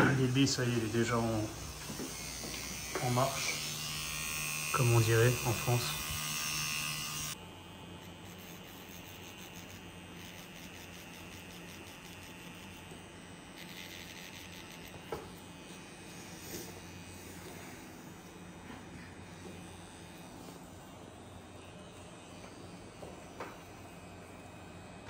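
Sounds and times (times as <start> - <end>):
tattoo machine buzzing: 0.0 - 25.0.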